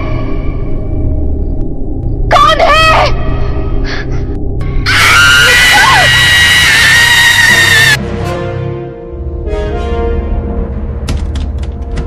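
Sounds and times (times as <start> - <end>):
background music: 0.0 - 12.0
high-pitched scream: 4.9 - 8.0.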